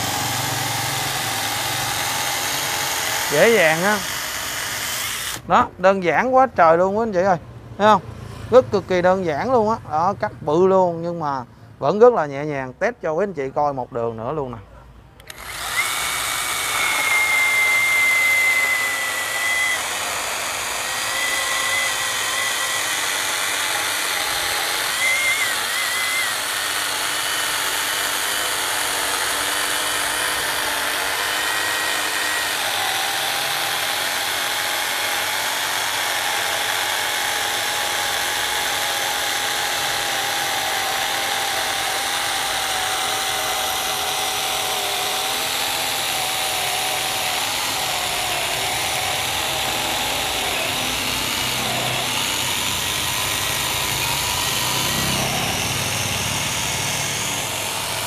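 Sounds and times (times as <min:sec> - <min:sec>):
chainsaw cutting through log: 0:00.0 - 0:05.7, 0:15.2 - 0:58.0.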